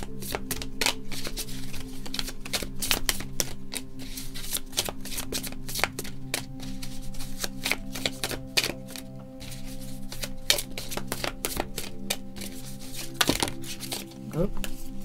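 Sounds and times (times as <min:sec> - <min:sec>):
cards being shuffled: 0:00.0 - 0:14.9
background music: 0:00.0 - 0:15.0.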